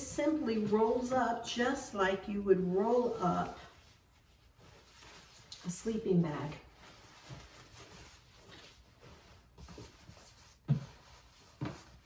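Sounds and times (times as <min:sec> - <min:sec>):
coat fabric rustling: 0:00.0 - 0:12.0.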